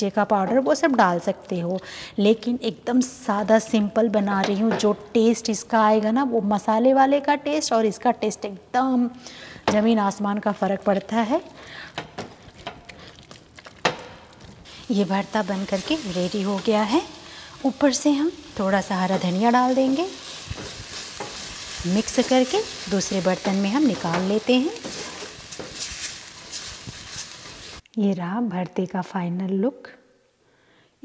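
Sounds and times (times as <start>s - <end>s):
faint hiss: 14.6s - 27.9s
utensil scraping in a steel pan: 19.0s - 27.8s.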